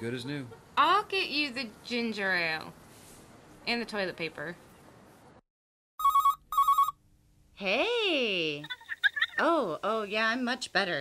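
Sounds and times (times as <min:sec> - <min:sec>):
telephone ringing: 0:06.0 - 0:07.0.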